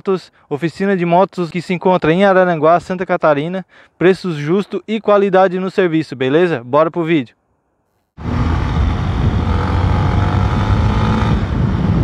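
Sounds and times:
motorcycle engine running: 8.2s - 12.0s
wind rushing: 8.2s - 12.0s.

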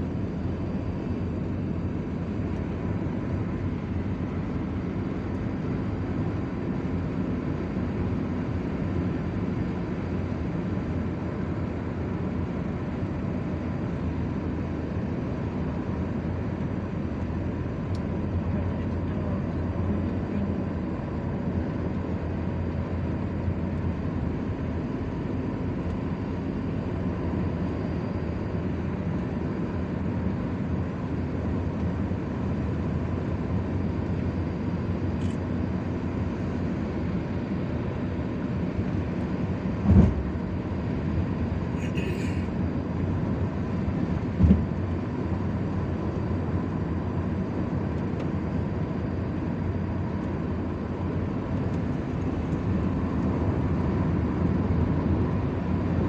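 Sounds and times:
car road and engine rumble: 0.0s - 56.0s
short thump: 39.8s - 40.2s, 44.4s - 44.7s.

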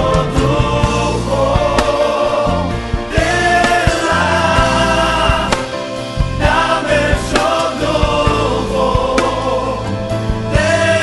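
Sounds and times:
choir singing gospel: 0.0s - 11.0s
instrumental backing: 0.0s - 11.0s.

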